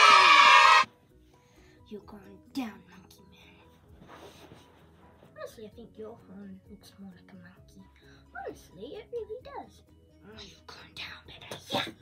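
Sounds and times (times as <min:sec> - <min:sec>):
child shouting: 0:00.0 - 0:00.9.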